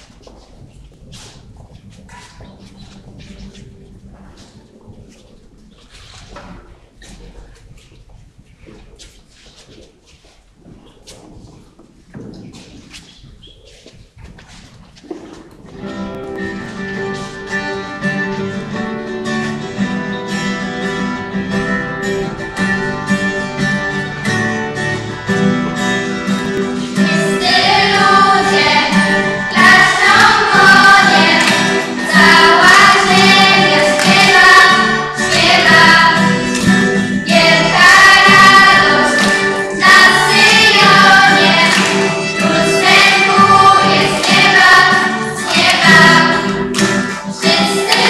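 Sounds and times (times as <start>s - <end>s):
guitar playing: 15.7s - 48.0s
women and girls singing a hymn: 26.8s - 48.0s.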